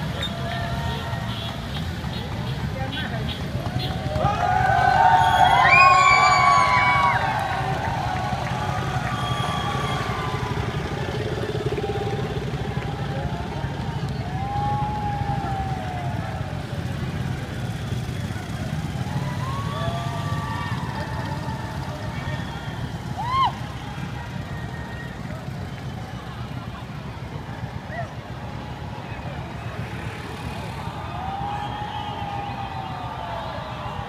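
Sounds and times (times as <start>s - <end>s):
motorcycles and cars driving past: 0.0s - 34.0s.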